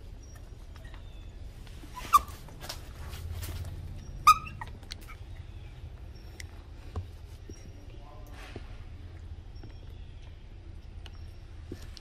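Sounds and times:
faint rustling: 0.3s - 9.0s
monkey squealing: 1.9s - 2.4s, 4.0s - 5.2s.

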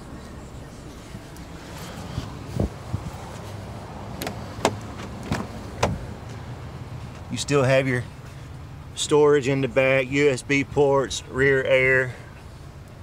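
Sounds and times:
steady low hum: 0.0s - 13.0s
knocks and clicks in car cabin: 4.2s - 6.0s.

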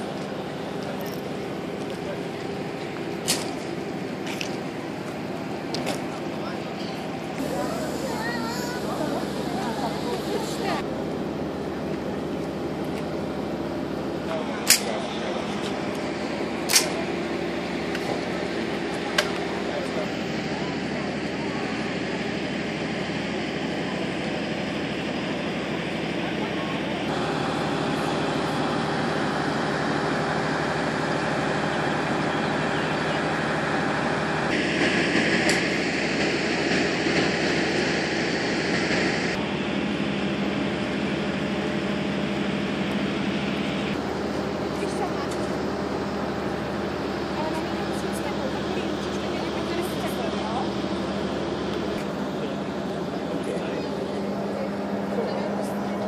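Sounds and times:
crowd talking indistinctly: 0.0s - 39.4s, 40.5s - 56.0s
steady low hum: 0.0s - 56.0s.

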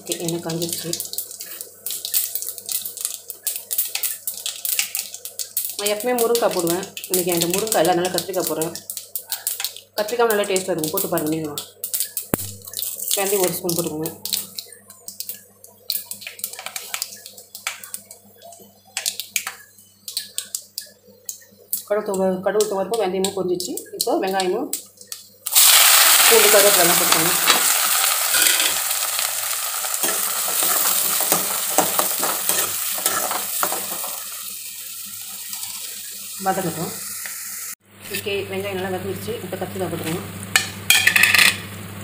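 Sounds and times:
loud sizzle of vegetables in oil: 0.0s - 18.2s, 25.4s - 38.2s
seeds crackling in hot oil: 0.0s - 42.0s.

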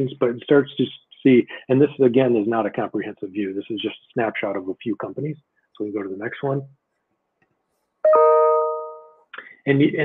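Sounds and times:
electronic chime: 8.0s - 9.3s.

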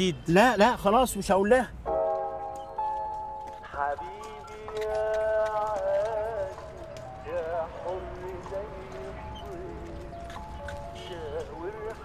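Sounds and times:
ornamented melody music: 1.8s - 5.2s
horse hooves clip-clopping: 2.2s - 12.0s.

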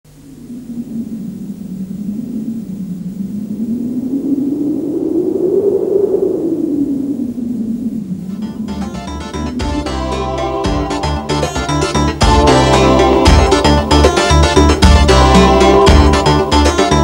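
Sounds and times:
howling wind-like rush: 0.1s - 16.6s.

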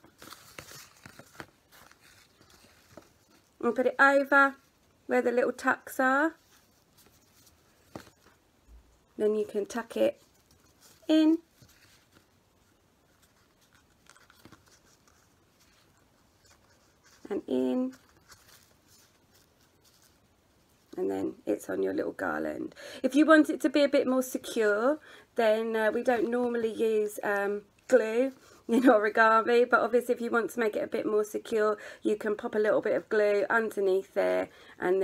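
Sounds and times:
paper rustling: 0.0s - 3.8s, 6.3s - 8.4s, 9.7s - 21.0s.

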